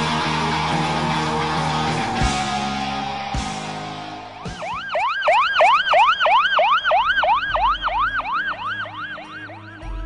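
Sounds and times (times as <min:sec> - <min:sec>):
siren yelping: 0:01.5 - 0:10.0.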